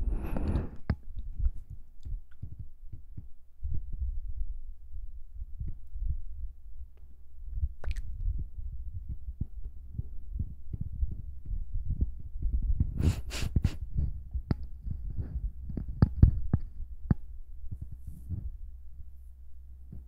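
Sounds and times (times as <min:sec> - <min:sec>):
soft low thumps and rubbing: 0:00.0 - 0:20.0.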